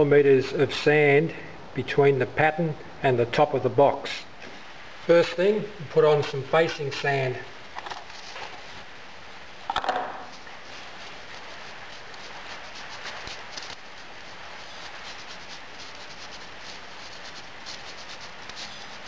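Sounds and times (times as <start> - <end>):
sand rustling through sieve: 10.3 - 19.0.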